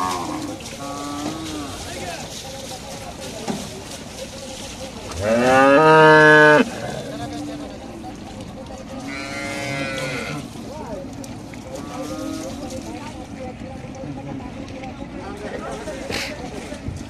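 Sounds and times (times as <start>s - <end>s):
cattle mooing: 0.0s - 2.0s, 5.1s - 7.8s, 9.0s - 10.6s, 11.7s - 12.7s.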